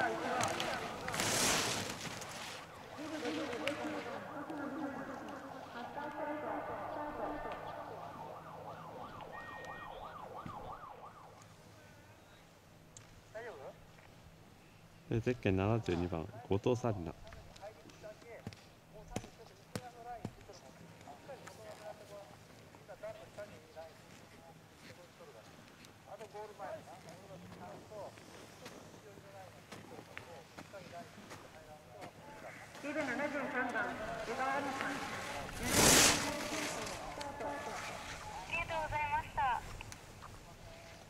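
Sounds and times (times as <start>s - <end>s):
faint distant voices calling: 0.0s - 15.1s
loud high wavering call: 9.3s - 10.2s.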